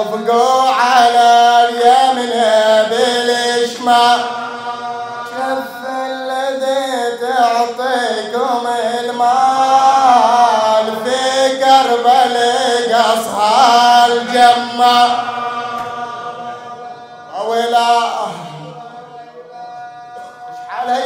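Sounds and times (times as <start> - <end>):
man chanting into a microphone: 0.0 - 21.0.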